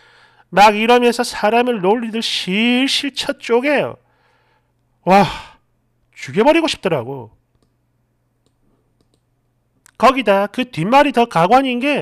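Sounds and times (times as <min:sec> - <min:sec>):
low steady hum: 0:00.0 - 0:12.0
computer mouse clicks: 0:07.5 - 0:07.8, 0:08.4 - 0:10.0.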